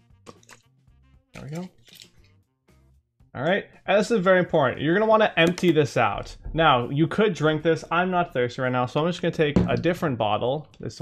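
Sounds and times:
quiet background music: 0.0 - 2.4, 3.4 - 11.0
plastic label tearing off bottle: 0.2 - 0.7, 1.4 - 2.2.

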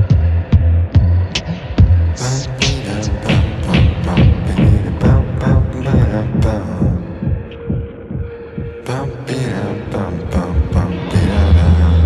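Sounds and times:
electronic rock beat: 0.0 - 8.9
low pulsing bass thumps: 0.0 - 9.0.

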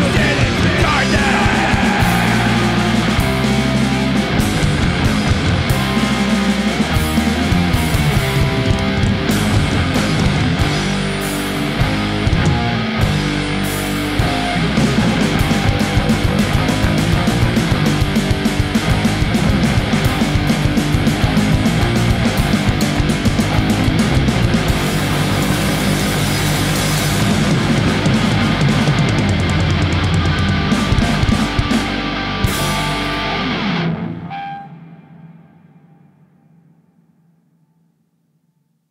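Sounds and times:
fast drums: 0.0 - 33.6
bass guitar: 0.0 - 35.3
electric guitars: 0.0 - 36.6.

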